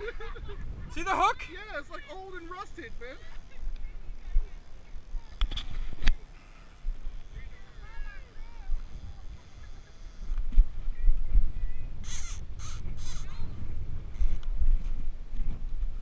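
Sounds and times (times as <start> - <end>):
wind rumble on microphone: 0.0 - 1.6, 6.8 - 16.0.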